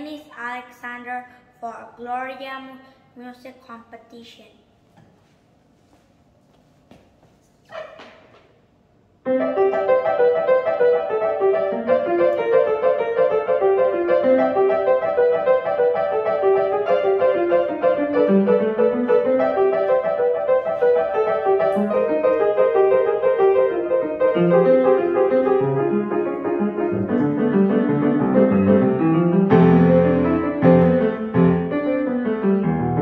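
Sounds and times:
piano playing fast notes: 9.3 - 33.0.

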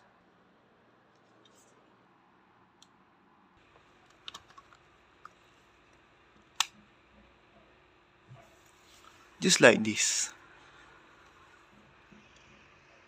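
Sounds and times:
small plastic clicks: 3.7 - 6.8.

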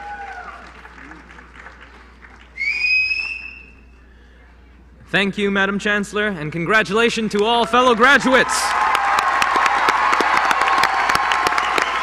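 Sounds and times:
audience clapping: 0.0 - 3.7, 7.3 - 12.0
loud shrill whistle: 2.6 - 3.9.

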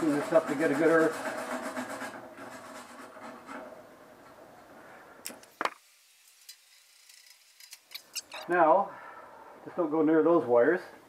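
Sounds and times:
metal being scraped by hand: 0.0 - 3.8.

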